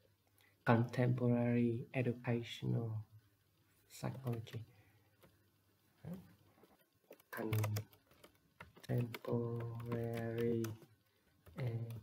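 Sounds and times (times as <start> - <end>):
typing on computer keyboard: 7.1 - 12.0
man's voice holding a level tone: 7.4 - 7.9, 8.9 - 10.8, 11.6 - 12.0.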